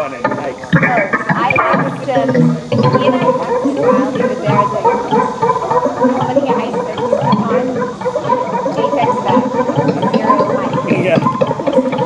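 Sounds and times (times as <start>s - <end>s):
electronic synthesizer music: 0.0s - 12.0s.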